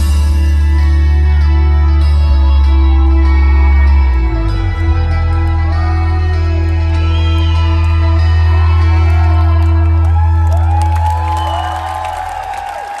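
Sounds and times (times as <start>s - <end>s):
rock band holding low note: 0.0s - 13.0s
audience whistling and whooping: 5.0s - 13.0s.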